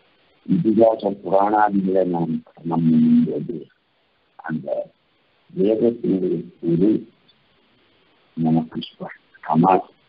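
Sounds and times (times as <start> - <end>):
man speaking: 0.5 - 3.6, 4.4 - 4.9, 5.6 - 7.1, 8.4 - 9.9.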